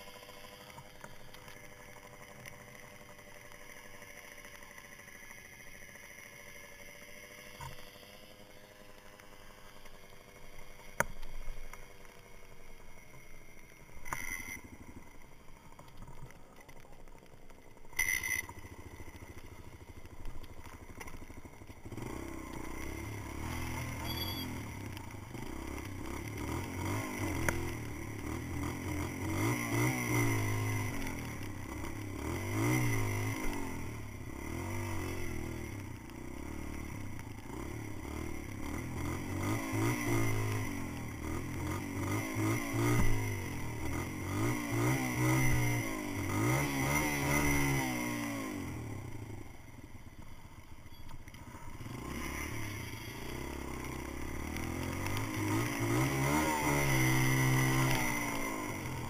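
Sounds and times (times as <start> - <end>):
dirt bike engine: 0.0 - 59.0.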